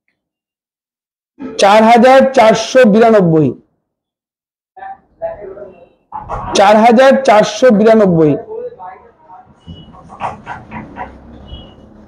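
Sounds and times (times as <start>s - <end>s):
people talking: 4.8s - 11.6s.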